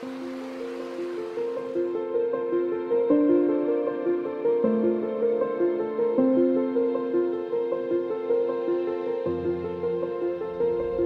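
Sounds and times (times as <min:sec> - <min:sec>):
river rushing: 0:00.0 - 0:02.5
calm background music: 0:00.0 - 0:11.0.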